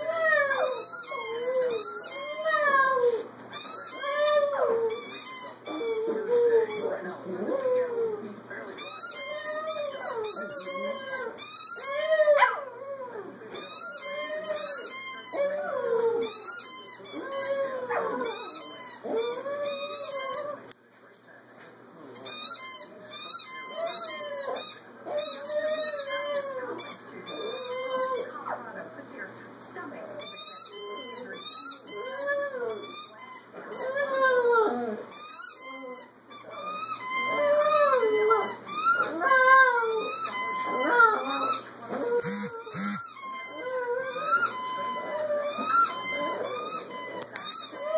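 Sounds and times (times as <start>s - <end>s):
small dogs howling and whining: 0.0s - 5.1s, 5.7s - 8.2s, 9.1s - 13.4s, 14.0s - 20.7s, 23.7s - 28.3s, 30.8s - 32.9s, 33.6s - 47.9s
small dog howling: 37.2s - 42.9s.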